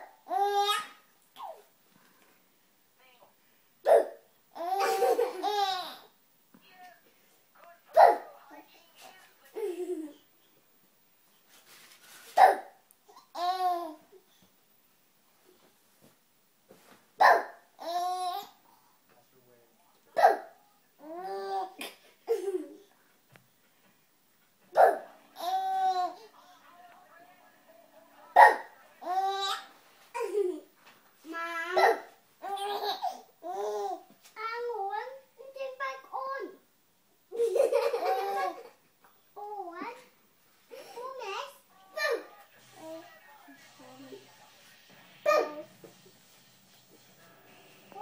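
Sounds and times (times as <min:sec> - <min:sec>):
baby laughing: 0:03.9 - 0:06.1, 0:31.8 - 0:34.0, 0:37.3 - 0:38.8.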